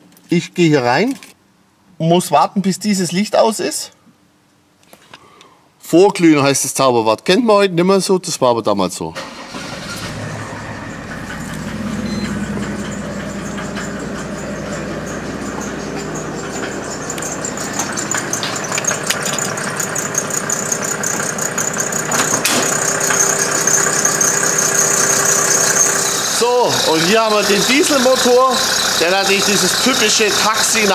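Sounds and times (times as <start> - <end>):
diesel engine starting and idling: 9.2 - 30.9.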